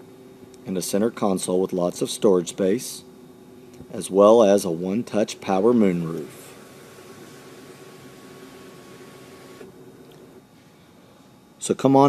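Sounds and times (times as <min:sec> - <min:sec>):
moonroof motor hum: 0:00.0 - 0:11.6.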